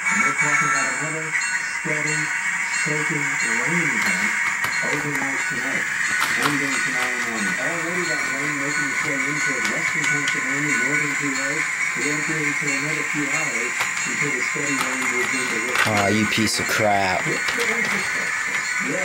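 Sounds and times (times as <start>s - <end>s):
broadcast voice: 2.9s - 19.0s.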